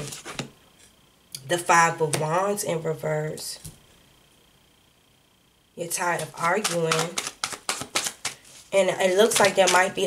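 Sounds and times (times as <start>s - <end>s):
cards being shuffled: 6.2s - 10.0s.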